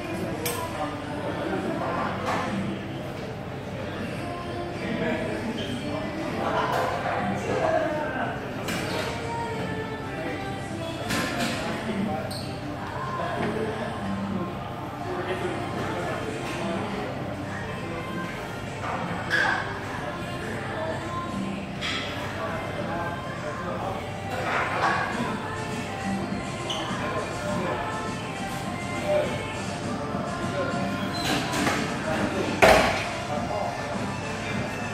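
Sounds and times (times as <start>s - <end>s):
background music: 0.0s - 34.9s.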